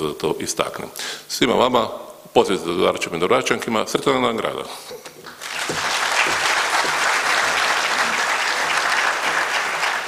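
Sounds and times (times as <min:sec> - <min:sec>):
audience applauding: 0:05.3 - 0:10.0.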